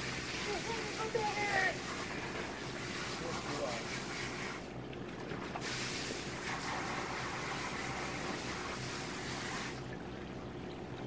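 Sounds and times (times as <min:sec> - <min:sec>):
garden hose spraying water: 0:00.0 - 0:09.9.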